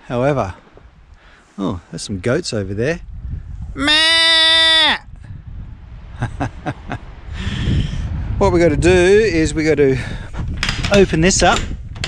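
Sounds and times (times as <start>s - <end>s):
goat bleating: 3.8s - 5.0s.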